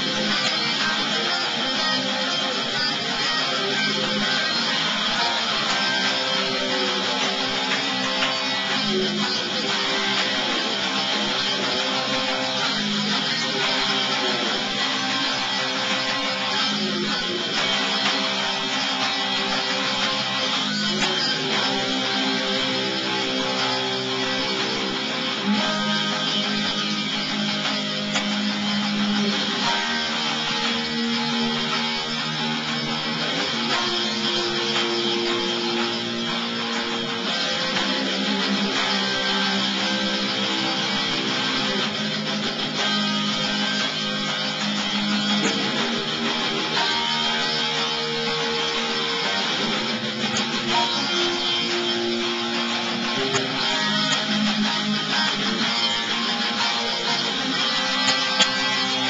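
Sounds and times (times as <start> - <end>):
bass guitar: 0.0 - 59.0
strummed electric guitar chords: 0.0 - 59.0.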